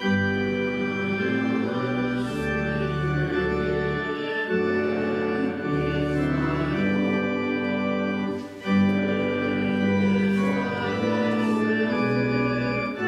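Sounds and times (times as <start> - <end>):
church organ playing hymn: 0.0 - 13.0.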